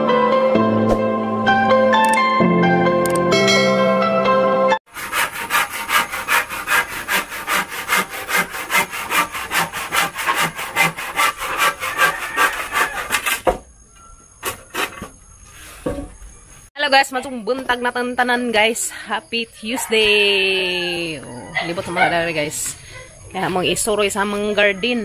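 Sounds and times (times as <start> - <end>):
hand saw cutting wood: 4.9 - 13.6, 14.4 - 15.8.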